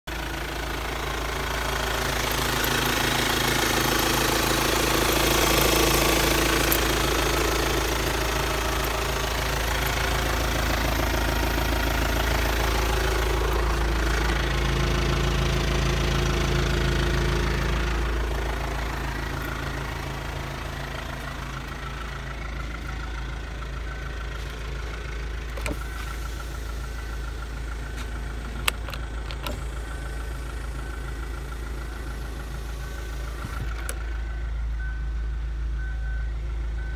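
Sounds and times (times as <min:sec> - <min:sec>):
diesel engine idling: 0:00.1 - 0:36.9.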